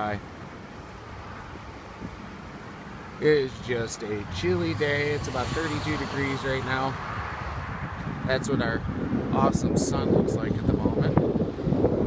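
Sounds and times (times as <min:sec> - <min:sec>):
outdoor background hiss: 0:00.0 - 0:07.7
man speaking: 0:03.2 - 0:07.0, 0:08.2 - 0:08.8.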